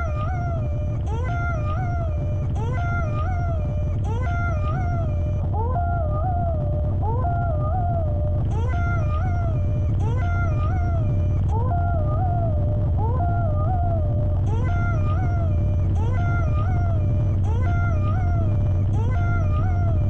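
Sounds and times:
gliding howl-like electronic tones: 0.0s - 20.0s
low electronic drone: 0.0s - 20.0s.

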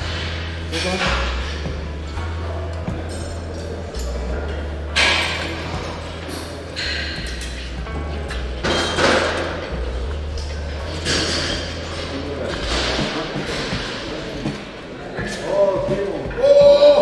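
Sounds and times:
background music with bass: 0.0s - 17.0s
voices: 0.7s - 17.0s.

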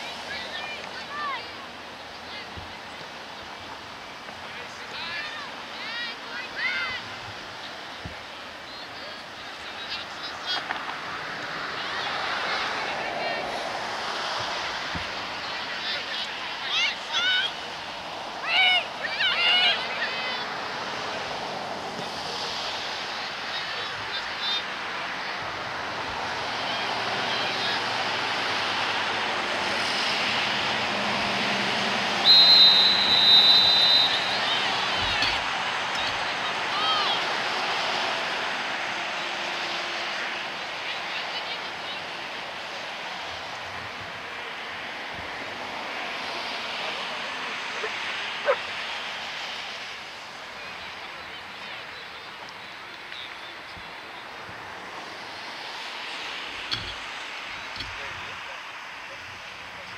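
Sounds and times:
open-air crowd hubbub: 0.0s - 59.9s
people shouting: 15.7s - 20.6s, 32.1s - 38.4s
referee's whistle blast: 32.2s - 35.3s.

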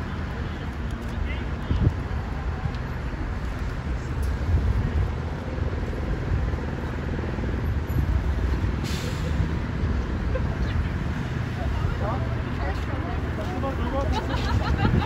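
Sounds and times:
wind buffeting microphone: 1.4s - 12.5s, 13.2s - 15.0s.

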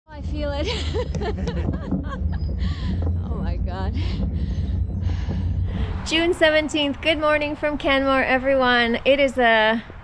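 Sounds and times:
wind rumble on microphone: 0.1s - 10.0s.

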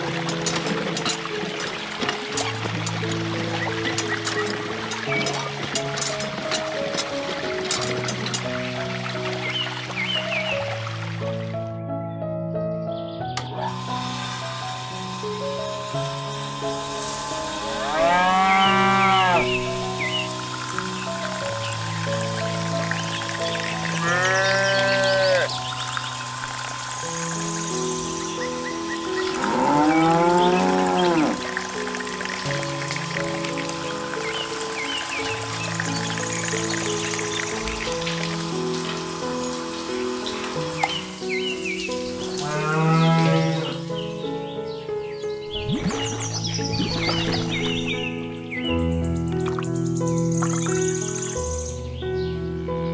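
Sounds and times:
background music: 0.0s - 52.9s
cattle mooing: 17.4s - 19.8s, 23.8s - 25.5s, 29.2s - 31.5s, 42.3s - 43.9s.

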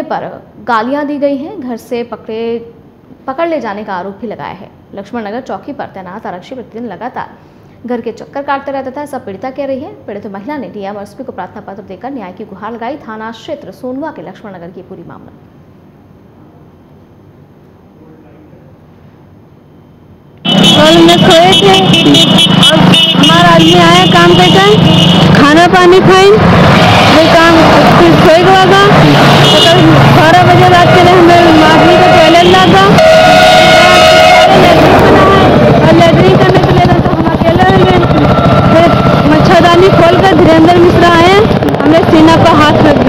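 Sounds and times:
woman speaking: 0.0s - 15.4s, 20.8s - 26.4s, 27.0s - 33.0s, 34.1s - 43.0s
woman talking: 0.0s - 15.4s, 20.8s - 26.4s, 27.0s - 33.0s, 34.1s - 43.0s
road traffic: 20.4s - 43.0s.

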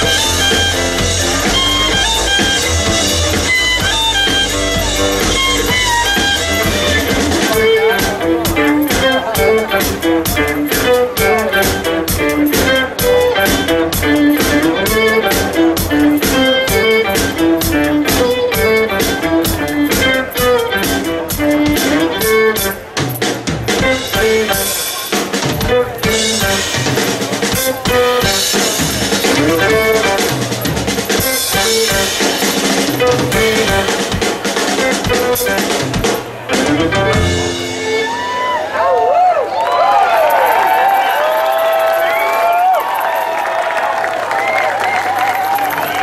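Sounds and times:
drum beat: 0.0s - 38.3s
acoustic guitar lead: 0.0s - 38.4s
fiddle: 0.0s - 38.8s.

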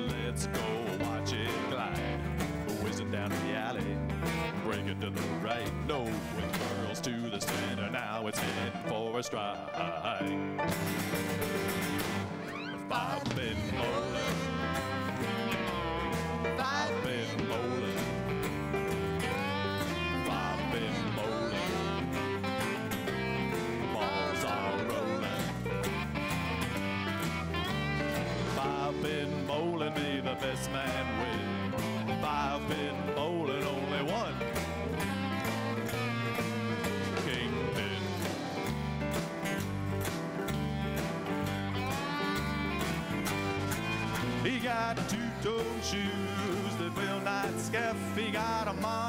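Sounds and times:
drums keeping a steady beat: 0.0s - 8.8s, 10.6s - 49.0s
bass and guitars: 0.0s - 49.0s
sliding lead guitar line: 0.0s - 49.0s.

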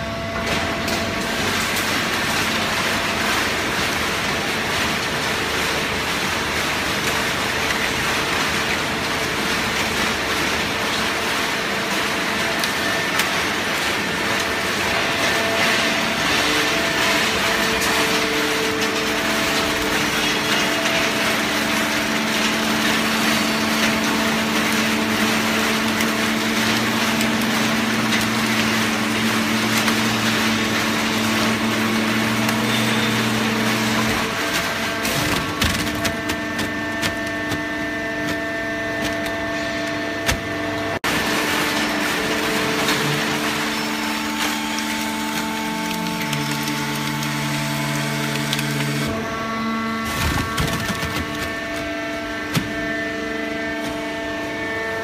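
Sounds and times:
baler motor hum and whine: 0.0s - 55.0s.

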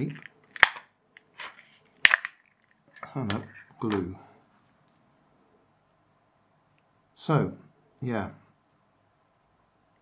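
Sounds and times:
cells scraping plastic: 0.0s - 4.0s.

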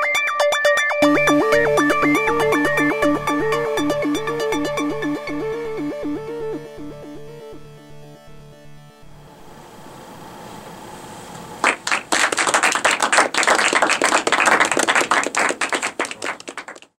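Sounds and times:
audience clapping: 11.6s - 17.0s.

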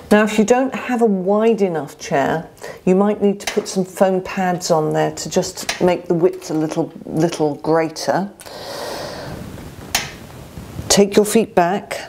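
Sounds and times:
soft breathy exhale: 8.4s - 9.5s.

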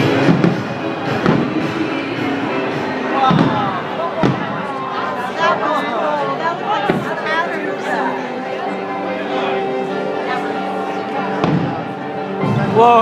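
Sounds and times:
fireworks booming: 0.0s - 4.8s, 6.8s - 7.3s, 11.3s - 12.0s
background music: 0.0s - 13.0s
people talking: 1.1s - 13.0s.

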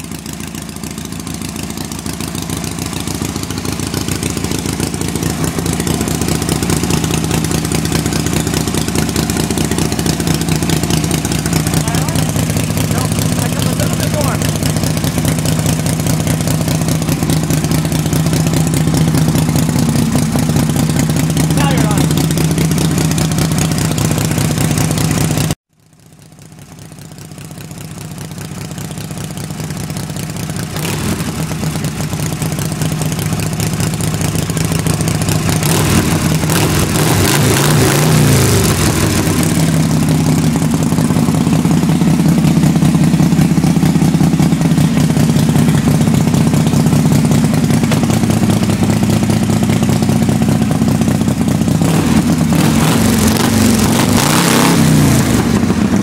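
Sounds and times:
motorcycle engine running and revving: 0.0s - 56.0s.

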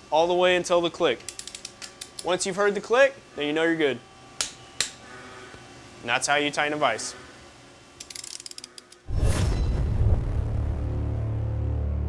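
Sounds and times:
ratchet clicks: 1.2s - 2.3s, 8.0s - 9.1s
deep boom: 9.1s - 12.0s
music sting: 9.4s - 12.0s.

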